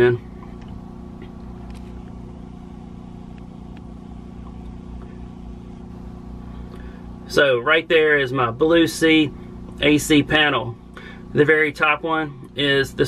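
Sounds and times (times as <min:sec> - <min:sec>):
generator engine humming: 0:00.0 - 0:13.0.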